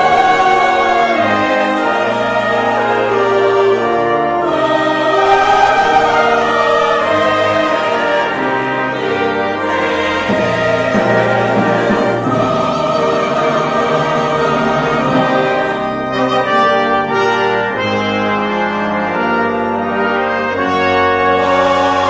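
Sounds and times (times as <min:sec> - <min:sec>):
brass ensemble chords: 0:00.0 - 0:22.0
choir singing: 0:00.0 - 0:22.0.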